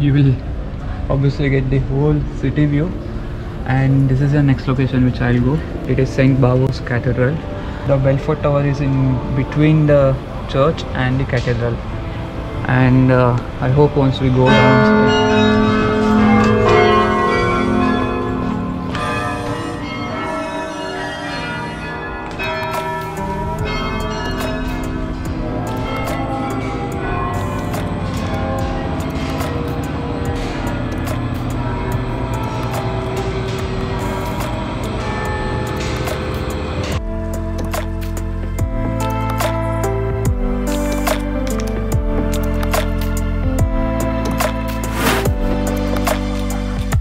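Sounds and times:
even musical sound: 0.0 - 47.0
carillon bells ringing: 2.7 - 47.0.

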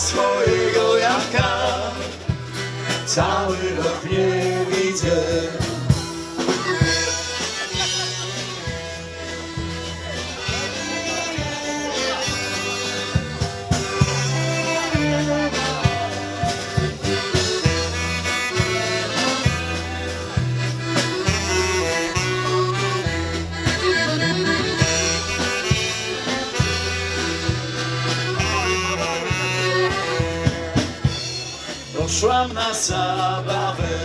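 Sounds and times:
folk dance band with accordion: 0.0 - 34.0.

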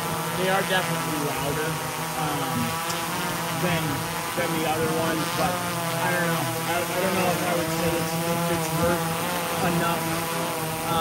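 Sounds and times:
drone hovering hum: 0.0 - 11.0.

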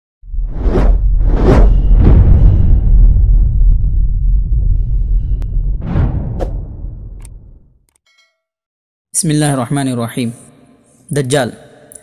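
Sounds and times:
deep steady rumble: 0.3 - 7.6
loud whooshes: 0.3 - 7.6.

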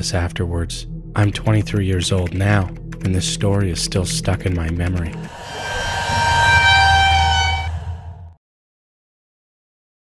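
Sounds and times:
low drone: 5.0 - 8.4
chord of high tones: 5.1 - 8.3.

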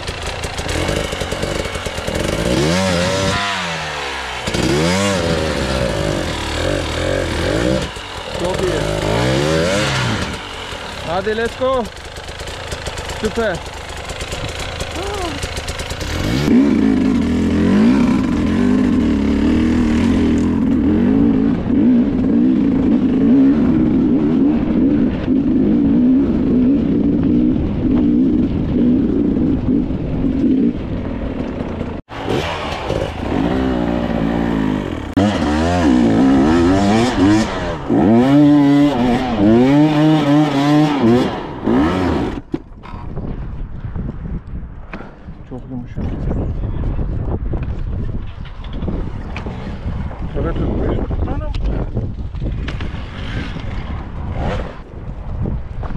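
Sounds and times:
dirt bike engine revving: 0.0 - 43.0.

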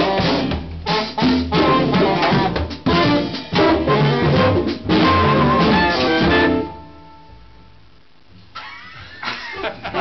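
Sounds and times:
men laughing: 8.6 - 10.0.

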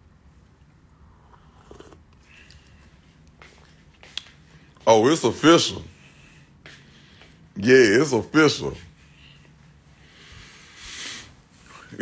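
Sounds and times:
faint low rumble: 0.0 - 4.8
person sipping from a cup: 0.9 - 2.9.

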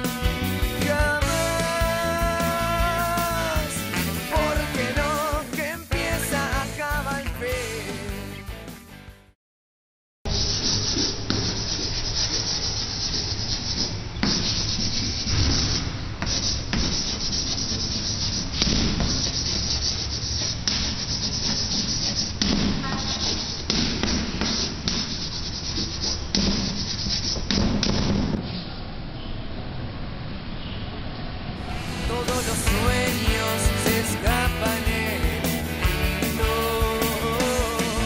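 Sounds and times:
chalk scratching on chalkboard: 10.3 - 28.6.

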